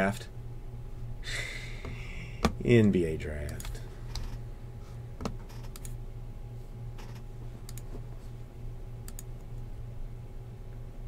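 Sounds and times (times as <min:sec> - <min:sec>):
low steady hum: 0:00.0 - 0:11.0
computer mouse clicks: 0:05.2 - 0:06.0, 0:07.0 - 0:07.9, 0:09.0 - 0:09.3.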